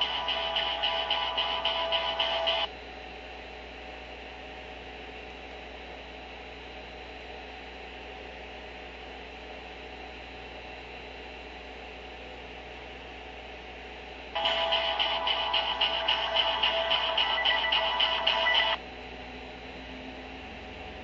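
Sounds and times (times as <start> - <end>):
electrical hum and hiss: 0.0 - 21.0.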